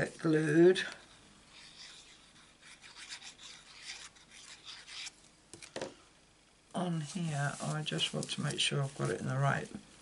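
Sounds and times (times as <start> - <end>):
paper cardstock rubbing: 1.5 - 5.2.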